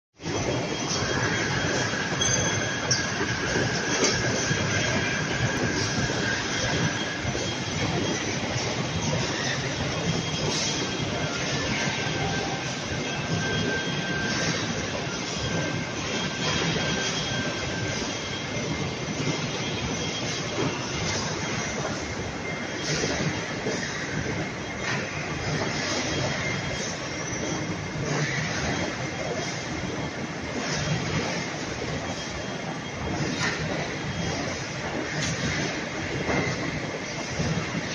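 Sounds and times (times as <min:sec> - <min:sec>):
machine mechanical clatter: 0:00.2 - 0:37.9
thin machine squeal: 0:00.3 - 0:37.9.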